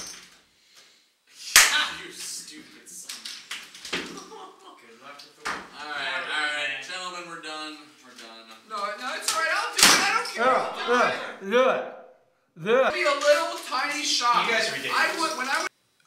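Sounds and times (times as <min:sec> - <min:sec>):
men exclaiming: 0:09.1 - 0:11.9, 0:12.6 - 0:15.6.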